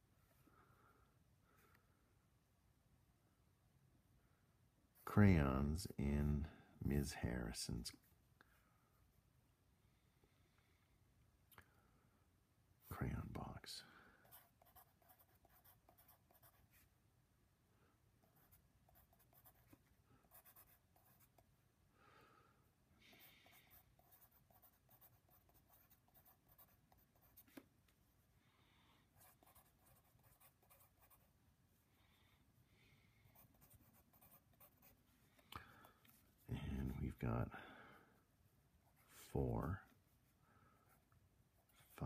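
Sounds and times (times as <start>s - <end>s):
pencil scratching on paper: 14.2s - 16.9s, 18.2s - 21.4s, 23.2s - 27.6s, 29.2s - 31.3s, 33.3s - 35.0s.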